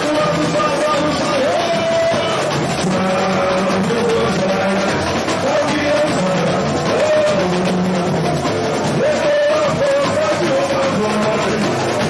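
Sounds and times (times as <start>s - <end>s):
samba drum section: 0.0s - 12.0s.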